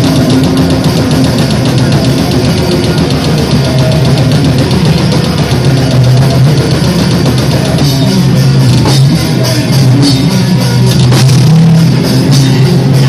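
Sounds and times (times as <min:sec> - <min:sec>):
distorted electric guitars: 0:00.0 - 0:13.0
drum kit rapid beat: 0:00.0 - 0:13.0.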